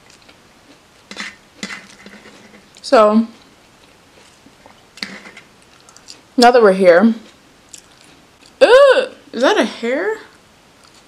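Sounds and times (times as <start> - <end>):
lettuce crackling in fingers: 3.9 - 6.3, 7.7 - 8.6.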